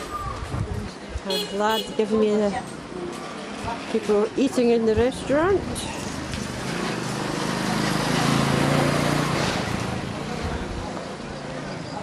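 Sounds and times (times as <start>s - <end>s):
street noise: 0.0s - 12.0s
vehicle engine passing by: 5.9s - 11.8s.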